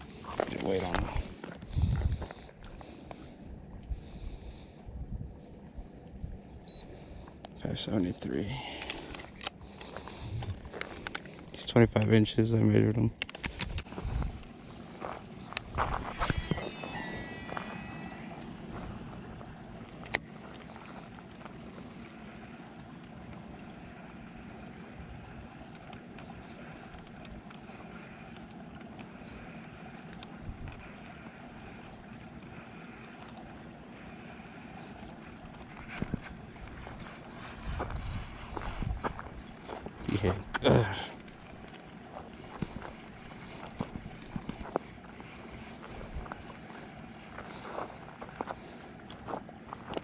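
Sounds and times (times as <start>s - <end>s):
brief whine: 16.0s - 19.1s.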